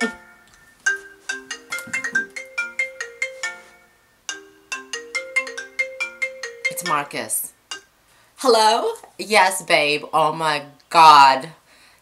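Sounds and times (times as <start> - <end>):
smartphone melodic ringtone: 0.0 - 7.1.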